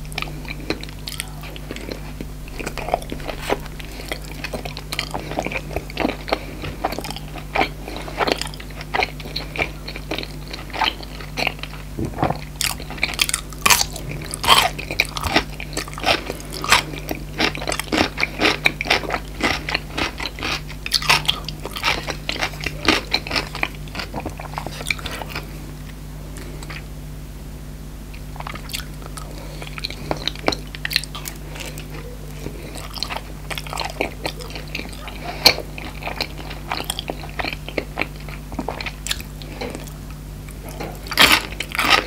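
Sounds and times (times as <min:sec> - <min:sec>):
wet mouth sounds: 0:00.0 - 0:25.5
crunchy food chewing: 0:00.0 - 0:27.0, 0:28.1 - 0:42.0
steady low hum: 0:00.0 - 0:42.0.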